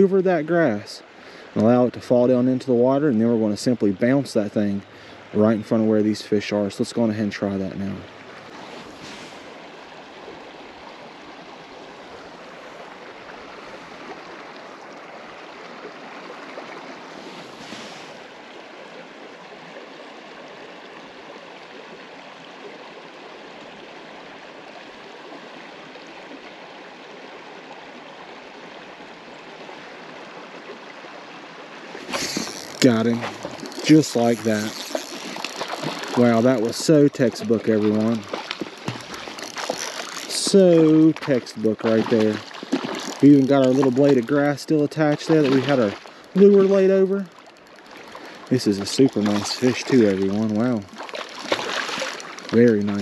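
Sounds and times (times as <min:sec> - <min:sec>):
creek water rushing: 0:00.0 - 0:53.0.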